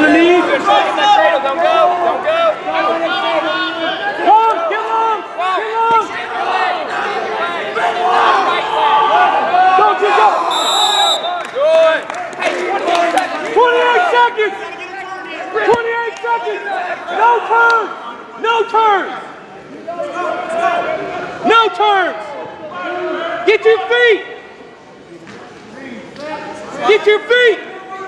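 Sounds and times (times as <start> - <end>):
high whistle blast: 10.5 - 11.4.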